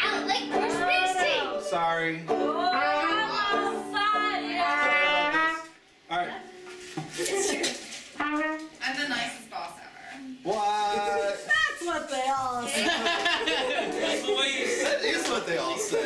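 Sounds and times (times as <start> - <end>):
loose voices: 0.0 - 16.0
small acoustic band with banjo: 0.0 - 16.0
trumpet melody: 2.5 - 6.7, 8.2 - 9.0.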